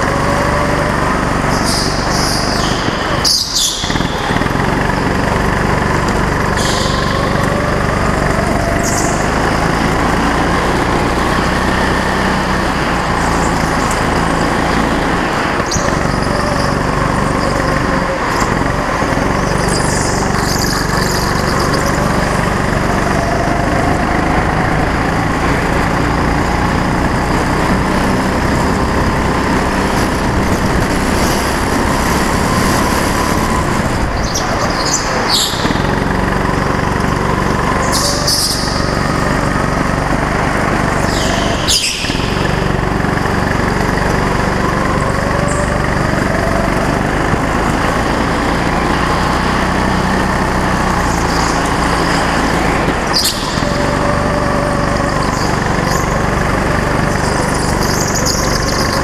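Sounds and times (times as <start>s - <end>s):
go-kart engine running: 0.0s - 59.0s.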